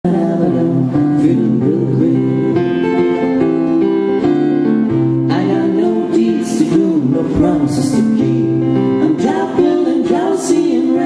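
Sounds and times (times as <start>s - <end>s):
men singing: 0.0s - 2.9s, 5.3s - 11.0s
acoustic guitar: 0.0s - 11.0s.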